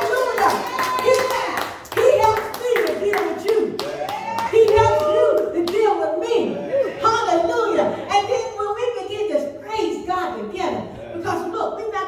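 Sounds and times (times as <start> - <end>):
hand claps: 0.0 - 5.9
woman preaching: 0.0 - 12.0.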